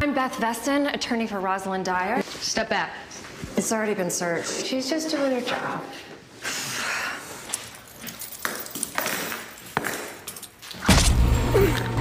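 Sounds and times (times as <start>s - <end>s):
metal chains rattling: 7.6s - 10.8s.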